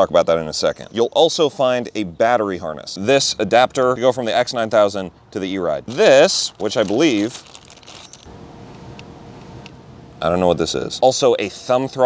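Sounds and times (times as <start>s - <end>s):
faint steady hum: 7.4s - 12.0s.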